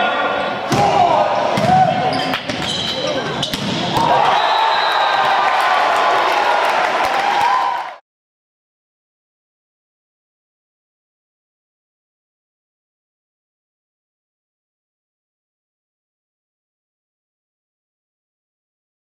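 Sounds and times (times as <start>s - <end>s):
players shouting: 0.0s - 2.3s, 2.9s - 8.0s
cheering: 3.8s - 8.0s.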